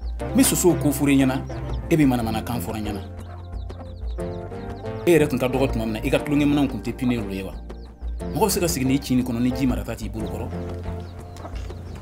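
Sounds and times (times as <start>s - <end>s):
background music: 0.0s - 12.0s
man speaking: 0.4s - 3.1s, 5.0s - 7.6s, 8.3s - 10.6s.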